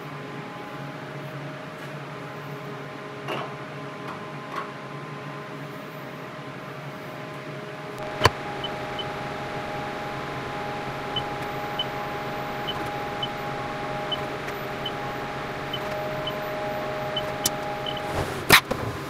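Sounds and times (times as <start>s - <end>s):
milling machine hum and whine: 0.0s - 18.6s.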